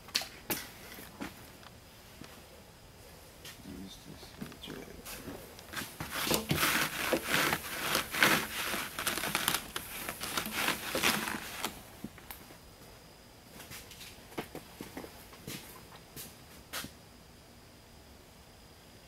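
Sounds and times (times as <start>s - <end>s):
cloth rag rubbing metal: 6.1s - 9.6s.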